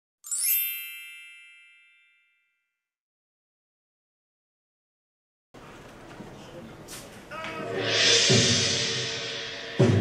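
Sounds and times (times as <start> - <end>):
bright chime ringing: 0.2 - 2.8.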